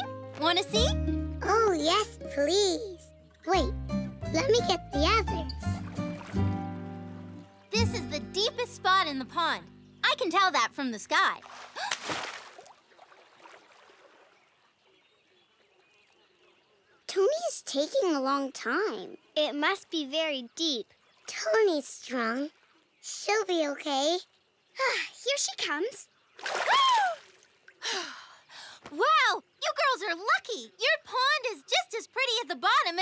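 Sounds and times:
faint water sound: 4.3 - 33.0.

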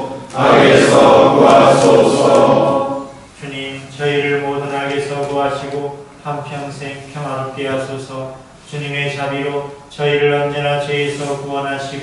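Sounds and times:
congregation reciting prayer: 0.0 - 5.8.

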